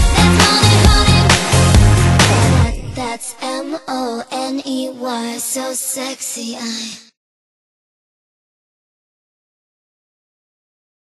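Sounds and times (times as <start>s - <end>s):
song: 0.0s - 4.5s.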